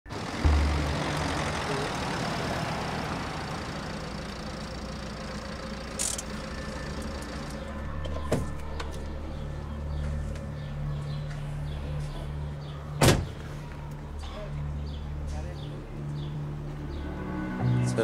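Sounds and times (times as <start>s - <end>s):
van engine running at low speed: 0.1s - 17.3s.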